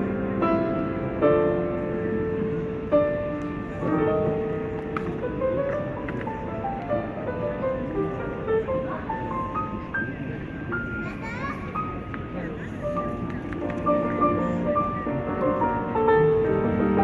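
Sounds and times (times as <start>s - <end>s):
piano melody: 0.0s - 17.0s.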